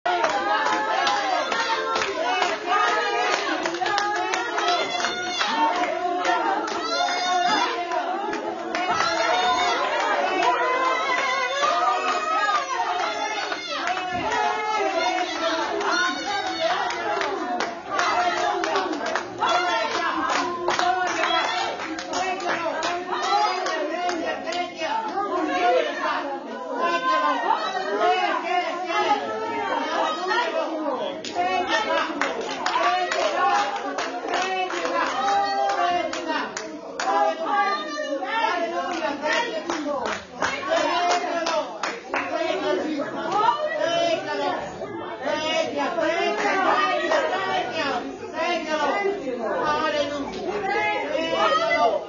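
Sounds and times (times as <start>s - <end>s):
raised voices: 0.0s - 52.0s
hands clapping: 0.1s - 14.5s, 15.2s - 25.2s, 32.0s - 37.2s, 38.9s - 42.6s
hand clapping: 16.9s - 24.2s, 38.9s - 42.3s.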